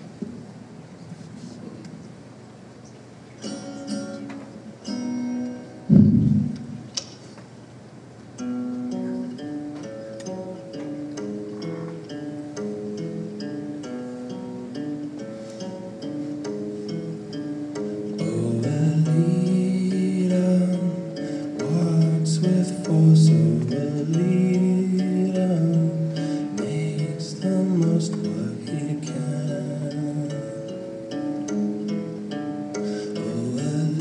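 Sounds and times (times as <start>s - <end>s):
electric guitar playing: 3.4s - 7.1s, 8.4s - 34.0s
loud thump: 5.9s - 7.1s.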